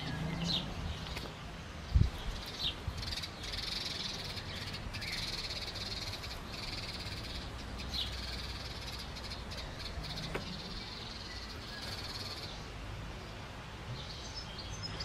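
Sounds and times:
bird chirps: 0:02.0 - 0:12.7.

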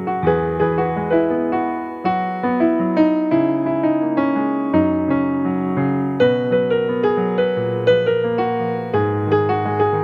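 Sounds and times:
electronic keyboard piano playing: 0:00.0 - 0:10.0.

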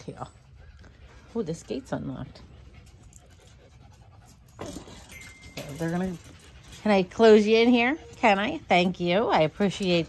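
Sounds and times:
fox panting: 0:00.0 - 0:10.0.

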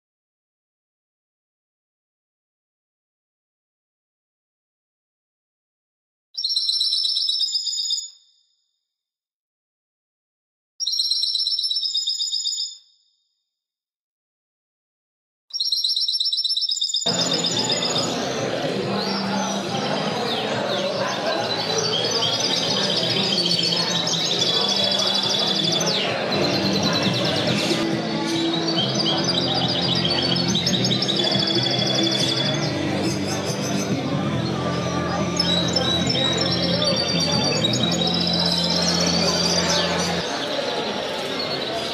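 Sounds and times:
songbird trilling: 0:21.1 - 0:27.8.

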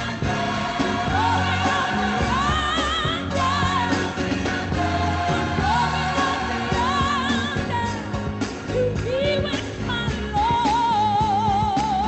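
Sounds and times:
gospel song with band: 0:00.0 - 0:12.0.

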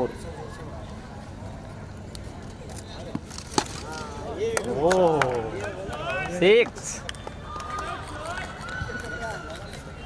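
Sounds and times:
people shouting and cheering: 0:07.2 - 0:10.0.

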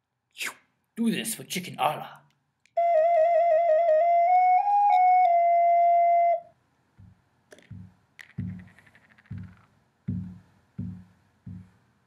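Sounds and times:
solo flute: 0:02.8 - 0:06.6.

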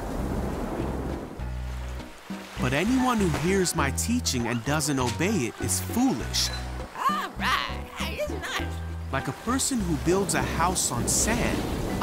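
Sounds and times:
rain and surging water: 0:00.0 - 0:12.0
background music: 0:00.3 - 0:12.0.

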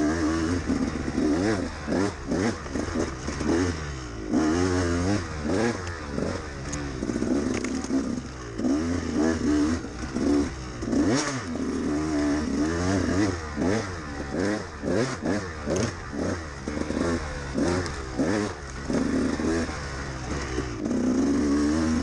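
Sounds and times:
dirt bike engine revving: 0:00.0 - 0:22.0.

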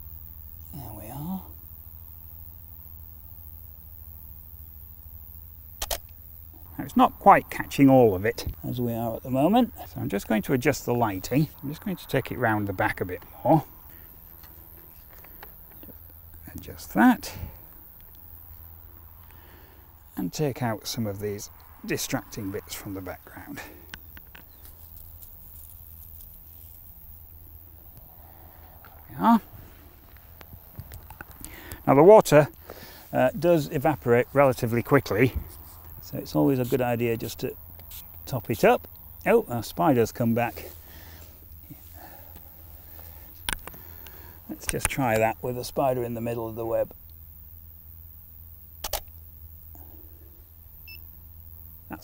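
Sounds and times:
faint low hum: 0:00.0 - 0:52.0
steady low rumble: 0:01.5 - 0:45.6
camera shutter clicking: 0:05.8 - 0:06.1, 0:48.8 - 0:49.1
dry grass rustling: 0:06.2 - 0:20.2, 0:22.3 - 0:33.2.

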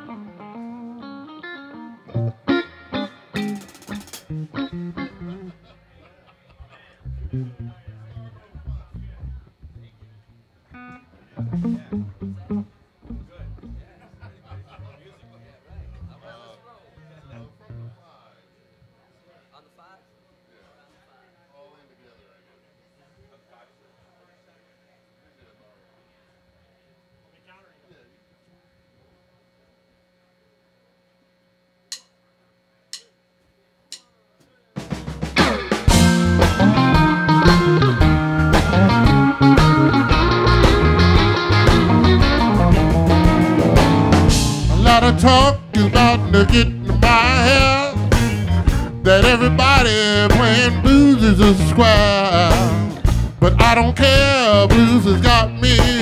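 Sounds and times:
live blues band playing: 0:00.0 - 0:05.6, 0:10.8 - 0:13.8, 0:34.9 - 0:56.0
plucked electric guitar notes: 0:00.0 - 0:05.6, 0:07.0 - 0:15.0, 0:35.4 - 0:56.0
faint amplifier hum: 0:00.0 - 0:56.0
faint voices: 0:05.2 - 0:30.7
drumstick clicks: 0:31.9 - 0:32.2, 0:32.9 - 0:33.2, 0:33.9 - 0:34.1.

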